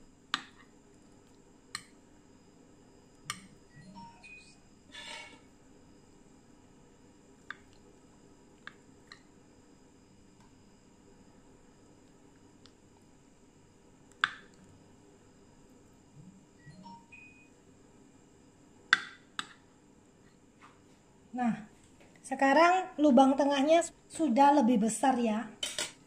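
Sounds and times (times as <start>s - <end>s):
spoon scraping plate: 4.9s - 5.5s
metal spoon clinking on porcelain plate: 25.6s - 26.0s.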